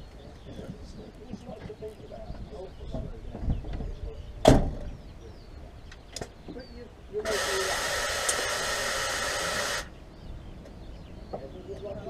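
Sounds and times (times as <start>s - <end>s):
compressed air hissing: 7.2s - 9.9s.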